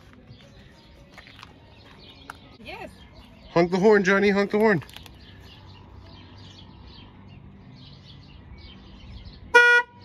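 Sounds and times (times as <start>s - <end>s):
outdoor background noise: 0.0s - 10.0s
car horn honk: 9.5s - 10.0s.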